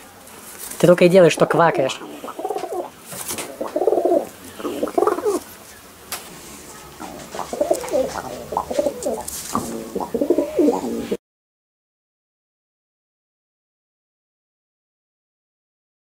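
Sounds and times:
pigeon quacking calls: 0:00.8 - 0:05.5, 0:07.0 - 0:11.2.

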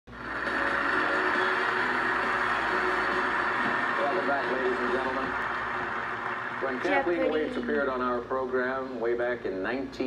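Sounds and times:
muffled audience applause: 0:00.2 - 0:08.0.

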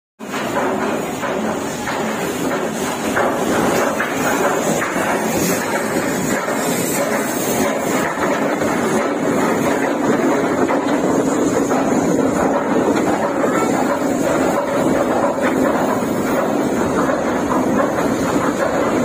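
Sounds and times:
ship hull rumbling and grinding: 0:00.2 - 0:19.0.

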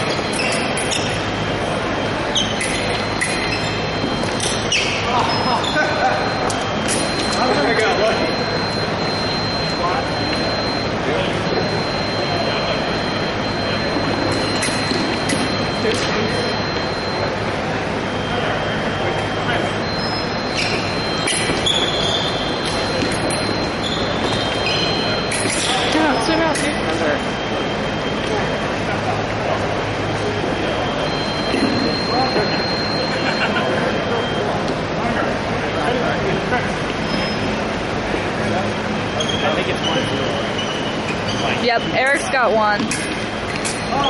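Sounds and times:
high electronic tone: 0:00.0 - 0:34.7
murmur of voices: 0:00.0 - 0:44.0.

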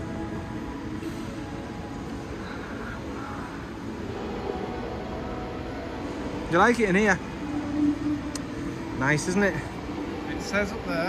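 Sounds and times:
distant crowd murmur: 0:00.0 - 0:11.0
faint background music: 0:00.0 - 0:11.0.

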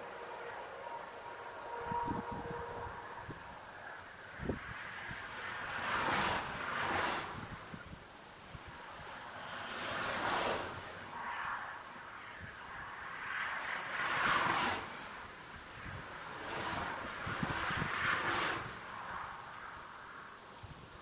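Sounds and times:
cars passing on road: 0:00.0 - 0:21.0
wind buffeting microphone: 0:01.7 - 0:08.8, 0:14.4 - 0:19.6.

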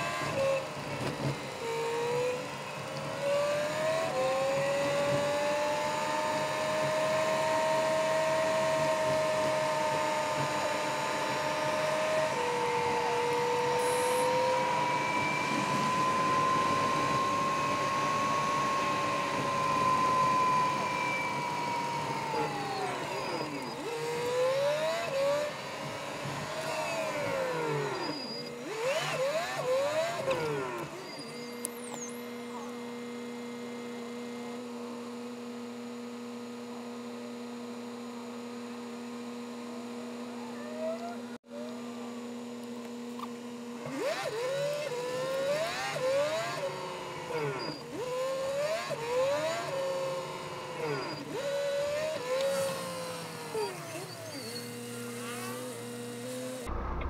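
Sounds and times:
truck engine from inside cab: 0:39.4 - 0:57.0.

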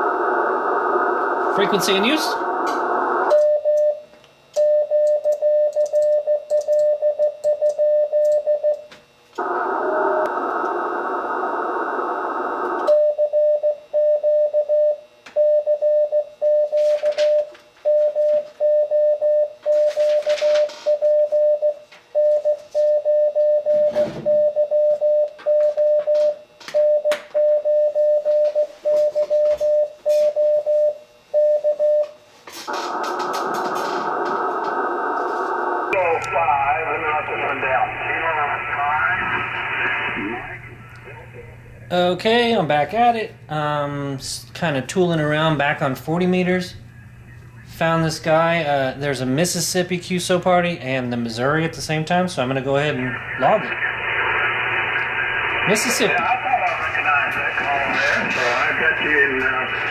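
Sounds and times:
radio band hiss: 0:00.0 - 0:03.4, 0:09.4 - 0:12.9, 0:32.6 - 0:44.2, 0:45.0 - 0:49.8, 0:51.2 - 0:59.9.

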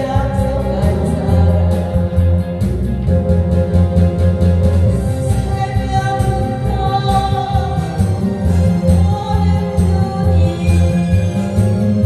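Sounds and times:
woman singing into a microphone: 0:00.0 - 0:02.5, 0:05.2 - 0:12.0
backing track with bass beat: 0:00.0 - 0:12.0.

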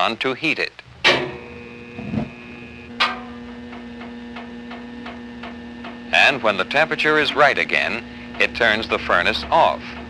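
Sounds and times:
furnace rumbling and humming: 0:00.8 - 0:10.0.

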